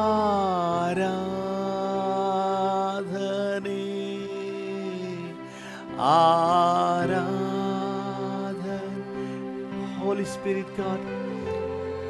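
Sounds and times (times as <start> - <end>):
man singing devotional chant: 0.0 - 11.6.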